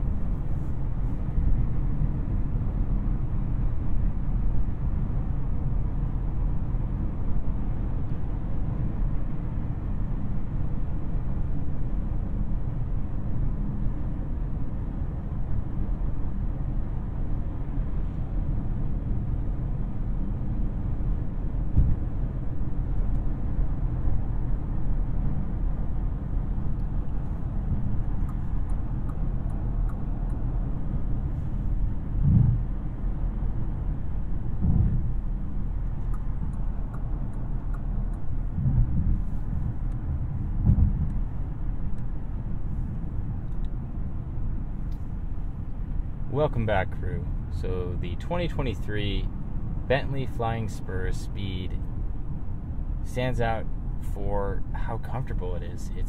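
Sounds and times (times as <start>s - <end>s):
muted car cabin rumble: 21.1s - 24.4s, 25.4s - 48.8s
brief low thumps: 32.2s - 32.7s, 34.6s - 35.2s, 38.5s - 39.6s, 40.6s - 41.2s.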